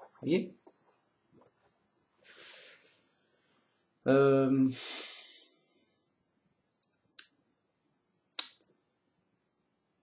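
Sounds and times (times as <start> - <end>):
mouth clicks: 8.3 - 8.7.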